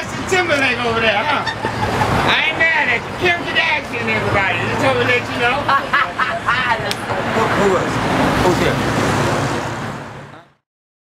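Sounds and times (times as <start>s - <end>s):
voices: 0.0s - 8.9s, 10.3s - 10.6s
bus engine running: 0.0s - 10.5s
traffic noise: 0.0s - 10.6s.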